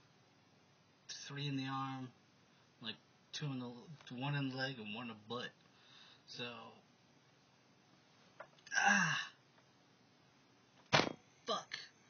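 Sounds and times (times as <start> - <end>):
sharp knock: 10.9 - 11.2.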